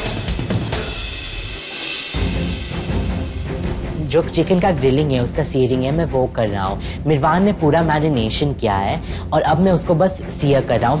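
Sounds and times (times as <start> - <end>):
dramatic music with drums: 0.0 - 11.0.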